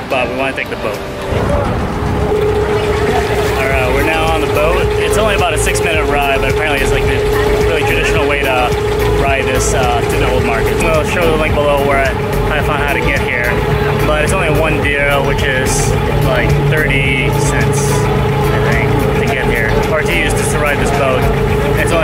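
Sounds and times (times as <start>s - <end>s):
boat engine running: 0.0s - 22.0s
people talking: 0.0s - 22.0s.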